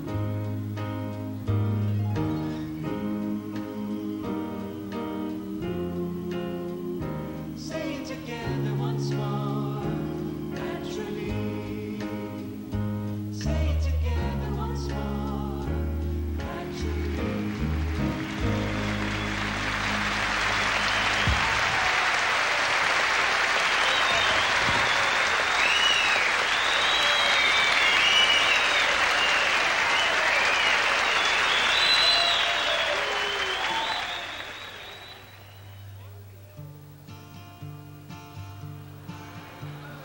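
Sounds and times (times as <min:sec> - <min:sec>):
audience applauding: 0:16.6 - 0:36.3, 0:39.2 - 0:40.0
high whistles and cheers: 0:16.7 - 0:36.3.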